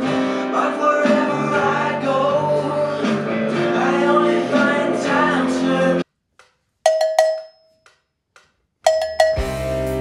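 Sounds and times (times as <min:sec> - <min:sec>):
cowbell struck with drumstick: 0:06.9 - 0:08.0, 0:08.9 - 0:09.8.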